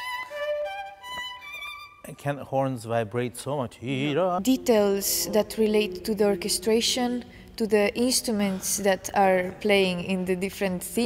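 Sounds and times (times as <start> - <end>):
bowed violin notes: 0.0 - 2.2, 4.4 - 7.8.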